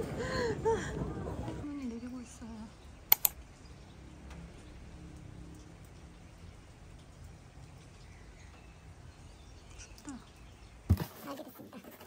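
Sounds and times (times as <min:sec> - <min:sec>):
sharp clicks: 0:03.1 - 0:03.4.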